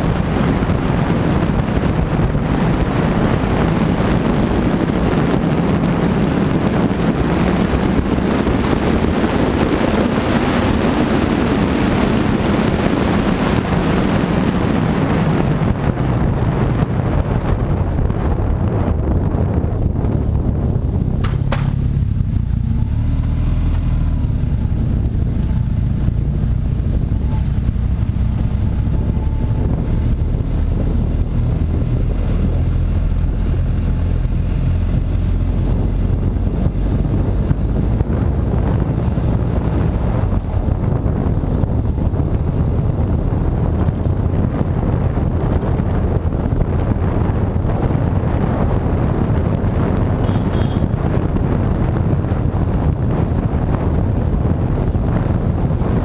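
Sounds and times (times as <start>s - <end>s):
motorcycle engine running: 0.0s - 56.0s
wind rushing over microphone: 0.0s - 56.0s.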